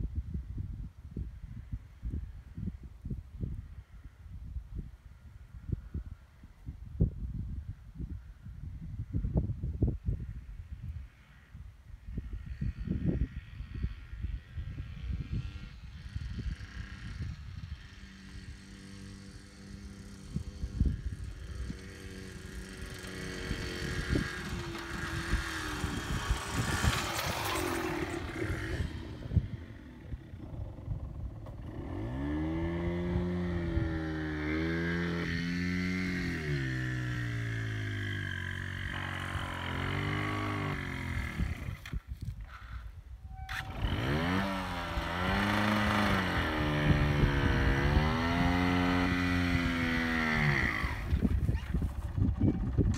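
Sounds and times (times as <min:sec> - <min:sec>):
wind rumble on microphone: 0:00.0 - 0:52.9
two-stroke motorcycle engine revving: 0:12.8 - 0:42.7, 0:43.3 - 0:52.9.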